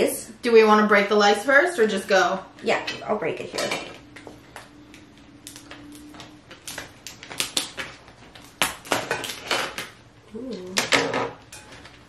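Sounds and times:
crab shells cracking: 4.9s - 10.0s.

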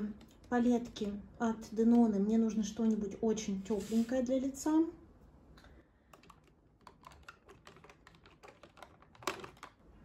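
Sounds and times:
plastic cases clicking: 6.1s - 9.8s.

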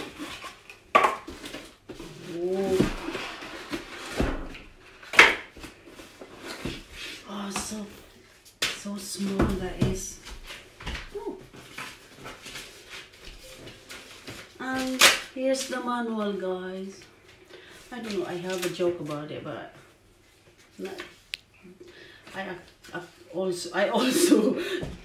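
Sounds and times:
cardboard and paper rustling: 0.0s - 21.2s.

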